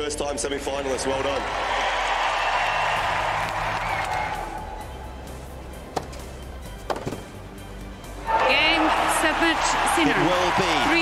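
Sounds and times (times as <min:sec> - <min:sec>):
crowd applause: 0:00.8 - 0:04.9, 0:08.3 - 0:11.0
crowd cheering and whistling: 0:00.9 - 0:05.2, 0:08.2 - 0:11.0.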